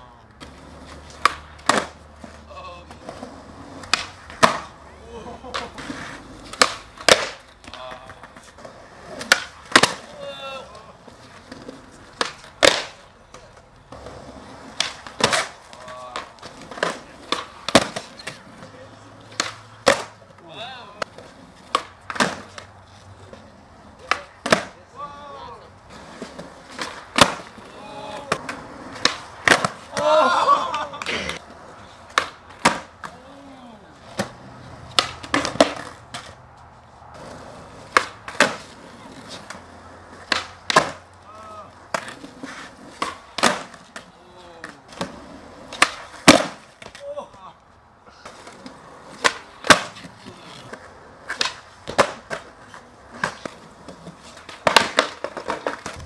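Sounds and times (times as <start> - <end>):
skateboard wheels rolling: 0.0 - 56.0
skateboard landing slaps: 0.4 - 2.0, 2.9 - 4.8, 5.4 - 8.5, 9.1 - 10.3, 11.5 - 14.1, 14.7 - 18.4, 19.2 - 20.3, 20.9 - 22.8, 23.9 - 24.8, 26.2 - 31.4, 32.1 - 33.2, 34.1 - 36.4, 37.2 - 47.4, 48.3 - 56.0
skateboard tail pops: 0.4 - 2.0, 3.8 - 4.7, 5.5 - 8.4, 9.1 - 10.1, 11.5 - 14.1, 14.7 - 18.4, 19.3 - 20.2, 21.0 - 22.7, 24.0 - 24.8, 26.2 - 30.1, 32.1 - 33.2, 34.1 - 36.4, 37.9 - 39.6, 40.2 - 41.0, 41.9 - 47.0, 48.4 - 56.0.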